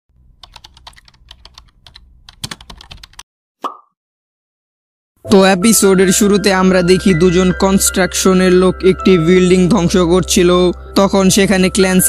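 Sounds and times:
keyboard typing clicks: 0.4 - 3.2.

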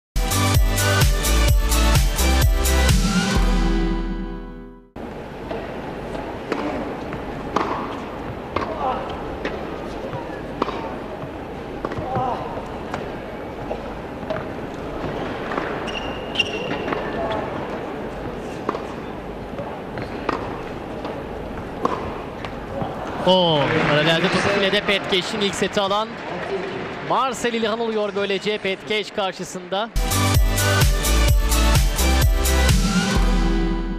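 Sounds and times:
electronic music: 0.2 - 4.9, 30.0 - 33.9
arena crowd murmuring: 5.3 - 15.5, 17.0 - 30.0
tennis ball bouncing: 6.5 - 18.9, 19.9 - 23.0
racket striking ball: 7.5 - 9.7, 10.6 - 11.0, 11.8 - 12.3, 20.0 - 21.2, 21.8 - 22.6.

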